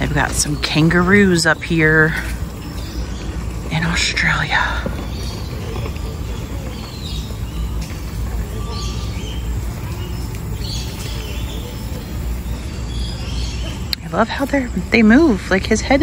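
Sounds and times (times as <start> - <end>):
bird chirps: 0.0 - 14.9
steady low rumble: 0.0 - 16.0.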